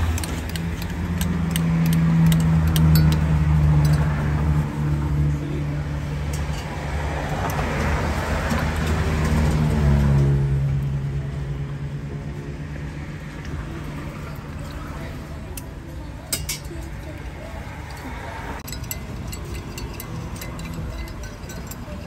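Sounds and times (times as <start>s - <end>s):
traffic noise: 0.0s - 22.0s
vehicle engine humming: 0.0s - 22.0s.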